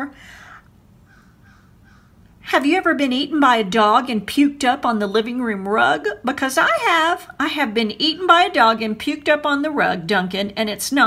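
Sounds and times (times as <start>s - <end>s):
woman speaking: 0.0s - 0.2s, 2.4s - 11.0s
breathy exhale: 0.2s - 0.7s.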